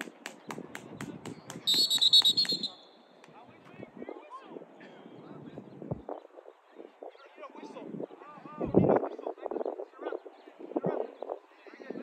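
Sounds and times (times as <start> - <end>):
referee's whistle blast: 1.7 - 3.0.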